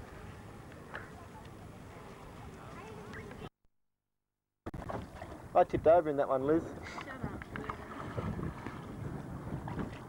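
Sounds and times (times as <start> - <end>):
steady outdoor hiss: 0.0 - 3.5, 4.9 - 8.0.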